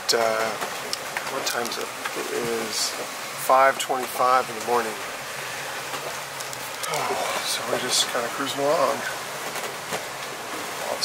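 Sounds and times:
wind and water rushing: 0:00.0 - 0:11.0.

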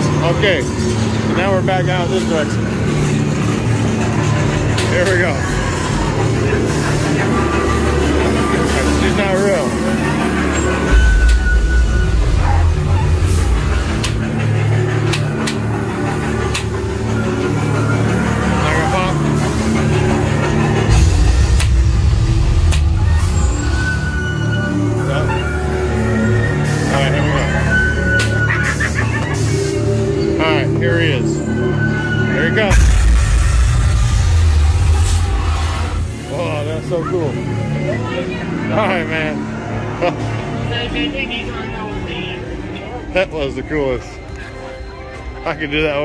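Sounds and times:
ominous music: 0:00.0 - 0:46.0
deep rumble: 0:02.6 - 0:26.6, 0:32.6 - 0:36.6.

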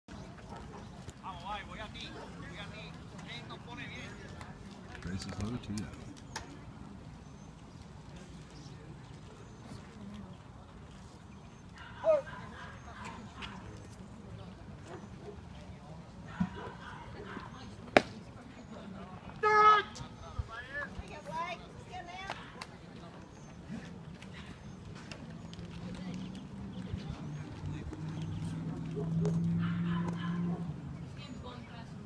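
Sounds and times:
faint spectator voices: 0:04.1 - 0:32.0.

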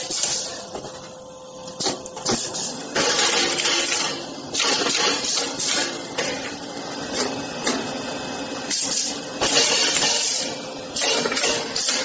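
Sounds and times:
machine mechanical clatter: 0:08.7 - 0:12.0.

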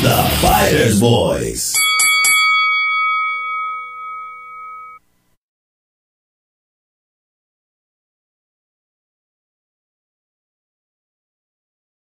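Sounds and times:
jingle music: 0:00.0 - 0:05.0
boxing ring bell ringing: 0:01.7 - 0:05.1.

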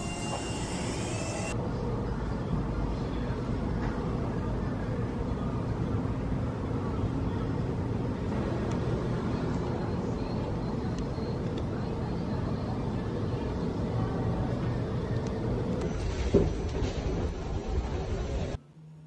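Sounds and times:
distant city traffic hum: 0:00.0 - 0:18.6.

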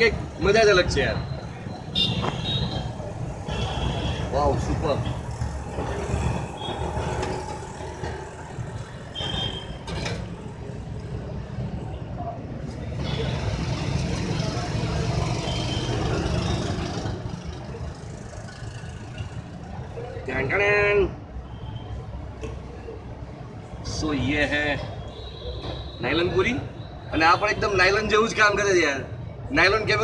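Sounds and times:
traffic rumble: 0:00.0 - 0:30.0.

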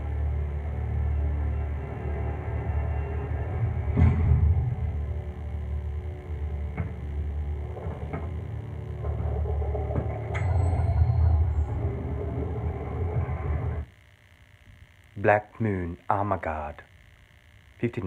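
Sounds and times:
low electronic film score: 0:00.0 - 0:13.9.

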